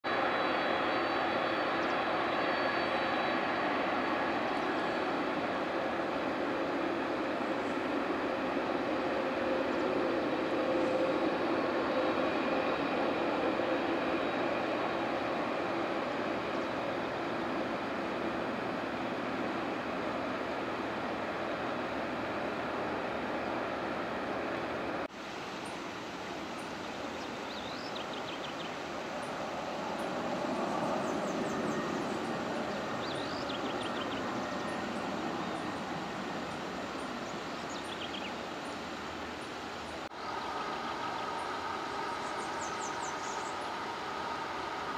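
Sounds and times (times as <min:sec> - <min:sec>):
jet engines running: 0:00.0 - 0:44.9
faint high whine: 0:00.1 - 0:44.9.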